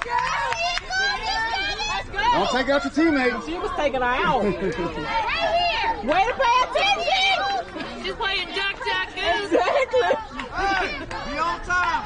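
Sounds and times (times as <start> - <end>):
high-pitched voices chattering: 0.0 - 12.0.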